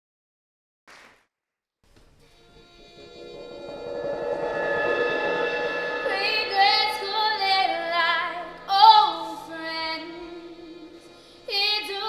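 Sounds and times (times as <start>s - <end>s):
sustained accompanying chords: 2.5s - 8.7s
woman singing with vibrato: 6.0s - 12.0s.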